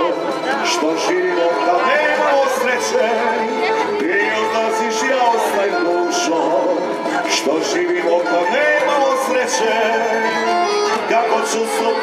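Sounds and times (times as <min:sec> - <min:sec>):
accordion: 0:00.0 - 0:12.0
person singing: 0:00.0 - 0:12.0
plucked and strummed strings: 0:00.0 - 0:12.0.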